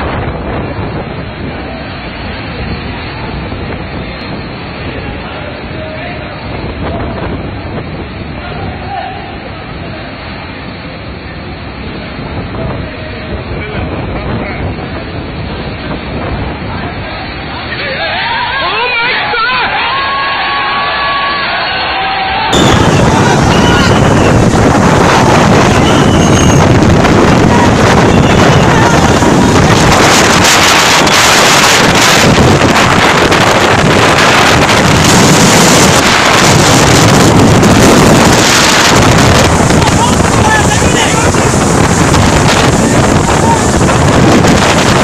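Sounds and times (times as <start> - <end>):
wind buffeting microphone: 0.0 - 17.5, 22.5 - 45.0
driving rain: 0.0 - 45.0
strong wind: 0.0 - 45.0.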